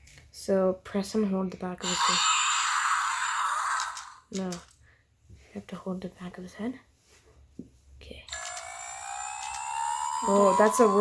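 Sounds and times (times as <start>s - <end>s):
toy dinosaur hissing growl: 1.8s - 4.3s, 8.3s - 11.0s.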